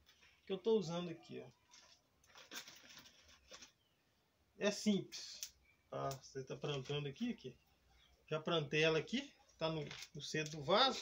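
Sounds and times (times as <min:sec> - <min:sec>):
hands rustling soil: 0:01.5 - 0:04.0.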